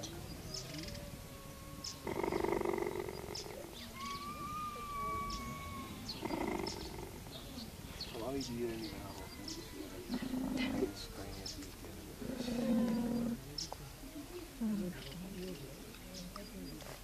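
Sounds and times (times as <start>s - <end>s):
cheetah purring: 0.0s - 7.7s, 10.1s - 11.0s, 12.2s - 13.4s.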